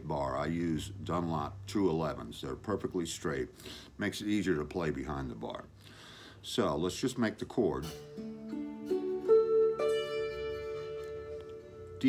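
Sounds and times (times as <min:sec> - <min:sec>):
slide guitar chord: 0:07.8 - 0:12.0.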